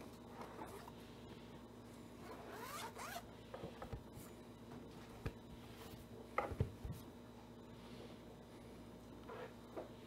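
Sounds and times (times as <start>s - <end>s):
zipper being pulled open: 2.2s - 3.2s.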